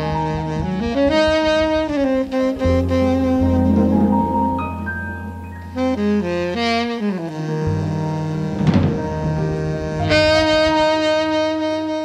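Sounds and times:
tenor saxophone long note: 0.5s - 8.6s, 9.2s - 12.0s
plucked double bass: 2.6s - 6.8s.

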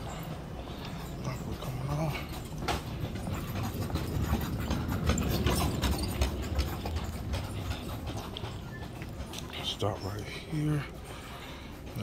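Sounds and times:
footsteps on tile floor: 0.0s - 12.0s.

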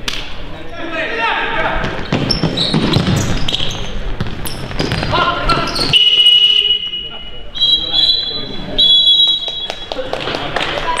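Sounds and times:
voices echoing in sports hall: 0.0s - 11.0s
shrill referee's whistle blast: 5.7s - 9.9s.

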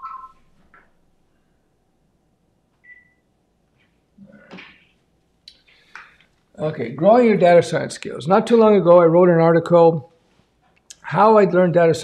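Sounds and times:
two-pitch electronic beep: 0.0s - 0.4s.

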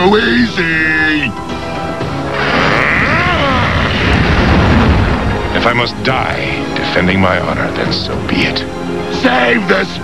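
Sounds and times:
cartoon rumbling sound effect: 2.4s - 5.0s
man crying out with effort: 2.6s - 4.0s.

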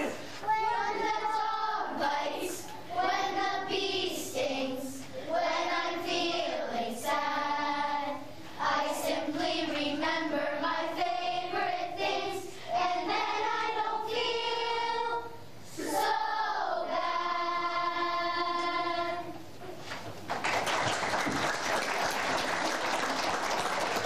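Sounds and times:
children's choir singing: 0.0s - 19.6s.

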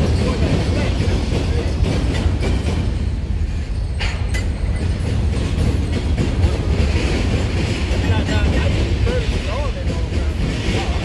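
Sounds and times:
steel wheels rumbling on rail: 0.0s - 11.0s.

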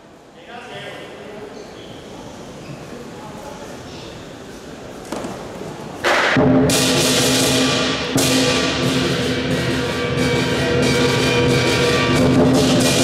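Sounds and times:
drum strokes: 5.2s - 13.0s
cymbal crashes: 6.0s - 13.0s.

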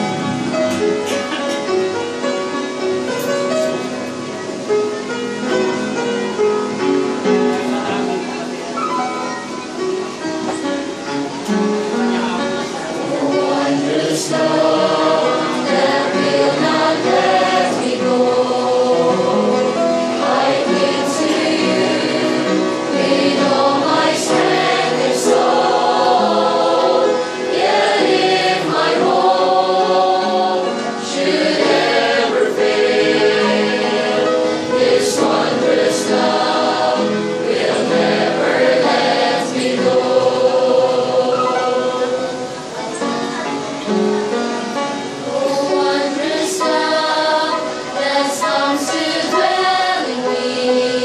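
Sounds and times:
mixed choir singing: 0.0s - 2.3s, 11.8s - 43.2s, 44.2s - 51.0s
upright piano: 0.0s - 51.0s.

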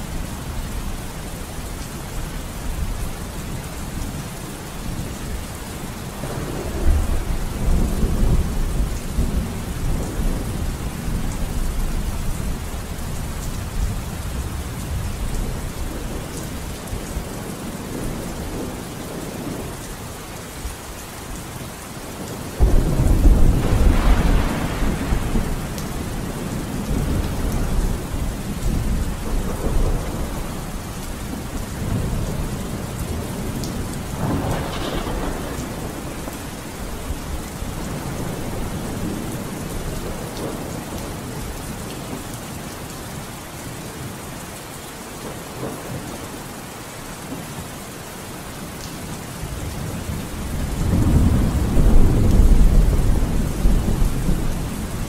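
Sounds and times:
steady rain: 0.0s - 55.0s
rolling thunder: 22.6s - 41.2s, 49.9s - 55.0s.

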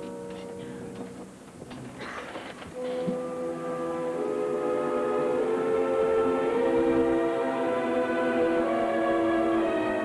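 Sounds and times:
orchestra brass chords: 0.0s - 1.0s, 2.8s - 10.0s.

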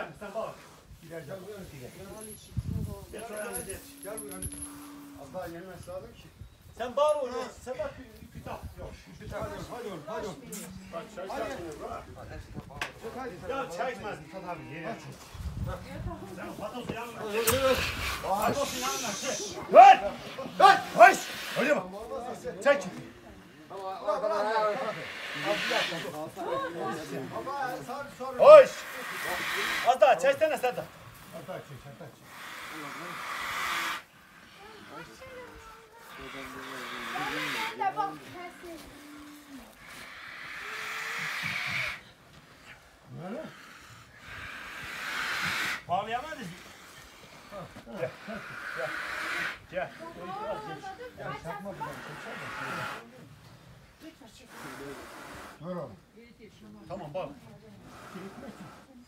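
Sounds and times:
men's voices calling: 0.0s - 53.4s
steady hiss: 17.3s - 21.9s
men shouting: 17.4s - 21.8s.

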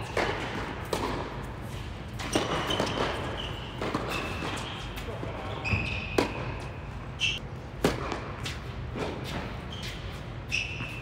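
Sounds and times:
tennis racket hitting ball: 0.0s - 1.4s.

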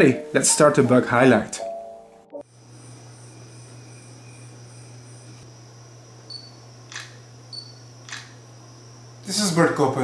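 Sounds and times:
camera shutter click: 8.1s - 8.4s.

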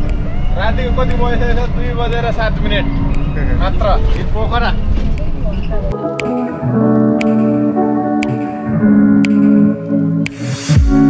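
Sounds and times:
bus engine rumble: 0.0s - 5.9s
road noise: 0.0s - 10.4s.

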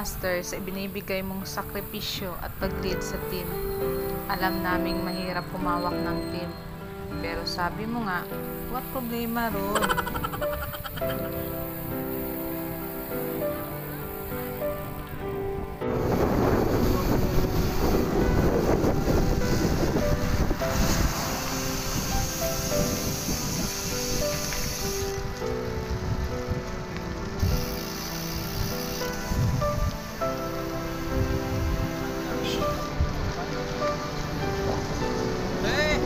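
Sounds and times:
background music: 0.0s - 36.0s
wind noise on microphone: 8.0s - 36.0s.

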